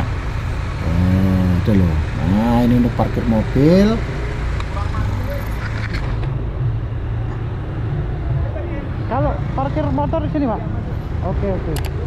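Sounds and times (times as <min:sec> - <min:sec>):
motorcycle engine running: 0:00.0 - 0:12.0
road noise: 0:00.0 - 0:12.0.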